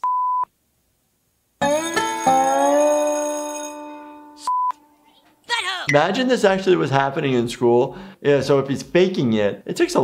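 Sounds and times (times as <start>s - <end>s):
censor bleep: 0.0s - 0.5s, 4.4s - 4.8s.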